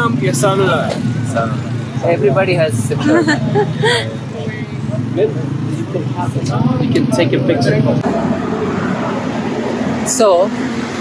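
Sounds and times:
street traffic hiss and rumble: 0.0 - 11.0.

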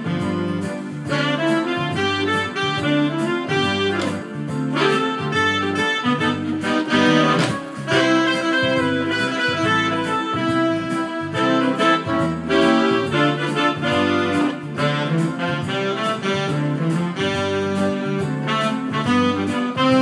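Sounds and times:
bass accompaniment: 0.0 - 20.0
keyboard lead melody: 0.0 - 20.0
steady drum beat: 0.0 - 20.0.

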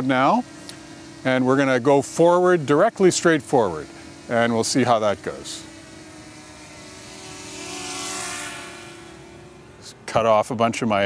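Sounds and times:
drone propellers whining: 0.0 - 11.0.

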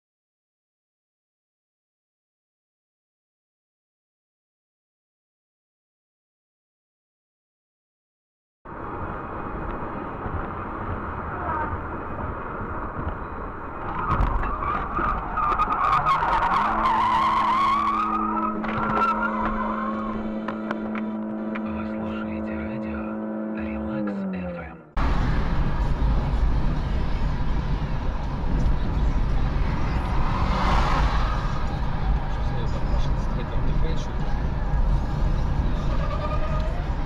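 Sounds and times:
car road noise: 8.7 - 37.0
road rumble inside moving vehicle: 8.7 - 37.0
tires squealing: 10.6 - 37.0
long steady tone sagging in pitch: 18.1 - 24.4.

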